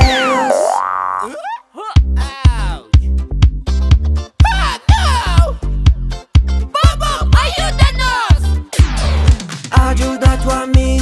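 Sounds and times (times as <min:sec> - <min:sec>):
music beat: 0:00.0 - 0:00.8, 0:02.0 - 0:11.0.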